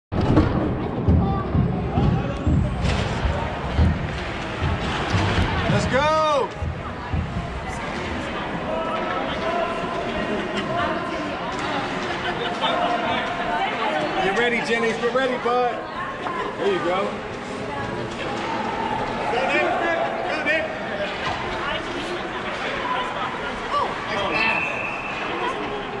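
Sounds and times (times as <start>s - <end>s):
knocks and thuds on ice rink: 0.2s - 8.3s
spectators' voices: 0.2s - 26.0s.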